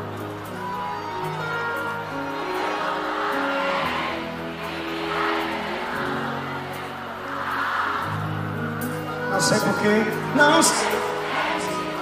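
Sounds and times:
large crowd noise: 0.0 - 12.0
live band slow held chords: 0.0 - 12.0.

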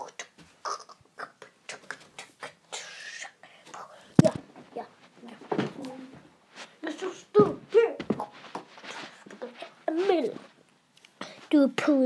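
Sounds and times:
child whispering: 0.0 - 4.1.

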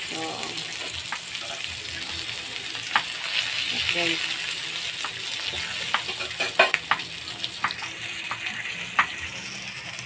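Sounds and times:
meat sizzling in frying pan: 0.0 - 10.0.

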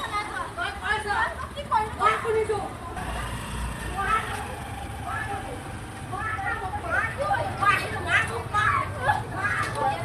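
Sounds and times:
vehicle passing: 0.0 - 10.0.

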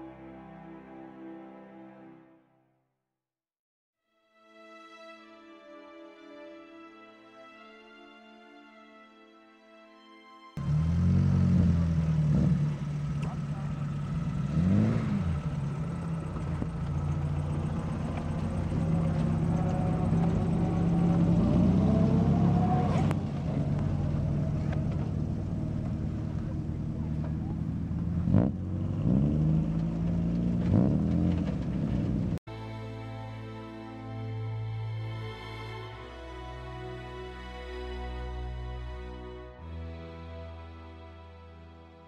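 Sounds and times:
car engines idling and revving: 10.6 - 32.4.

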